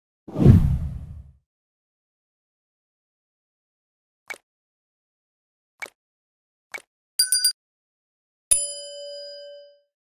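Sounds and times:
whoosh with deep low rumble: 0.3 - 1.3.

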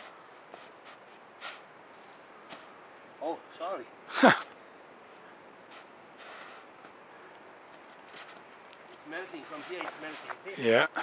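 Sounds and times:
footsteps crunching on snow: 0.0 - 2.8, 7.6 - 10.7
steady low hiss: 0.0 - 11.0.

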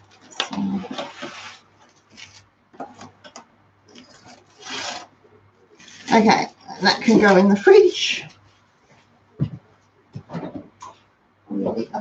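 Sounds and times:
plastic cling wrap crinkling: 0.0 - 3.1.

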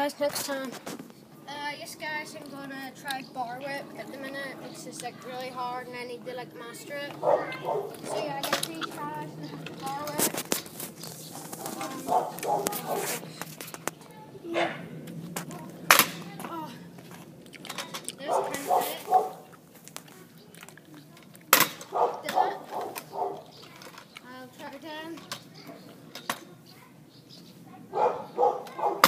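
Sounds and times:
boy talking: 0.0 - 10.4, 11.3 - 17.1, 18.0 - 29.0
scooter deck slapping on tarmac: 7.9 - 9.0, 15.1 - 20.1.

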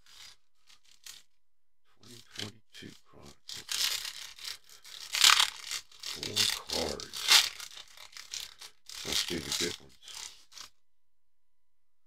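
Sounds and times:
foil wrapper crinkling and tearing: 3.5 - 10.7.

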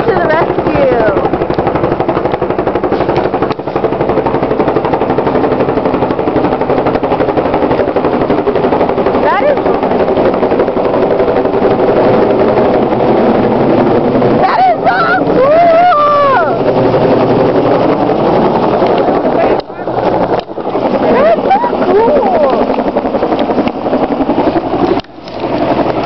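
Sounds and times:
helicopter engine whine: 0.0 - 26.0
helicopter rotor chopping: 0.0 - 26.0.

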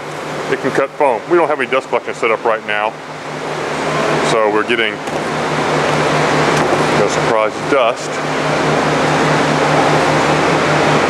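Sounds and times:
pulsing machine hum: 0.0 - 11.0.

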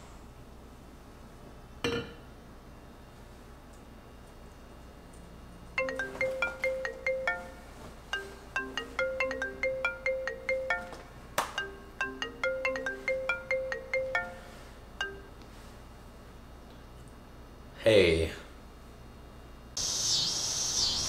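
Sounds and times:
marimba phone ringtone: 5.8 - 15.4.

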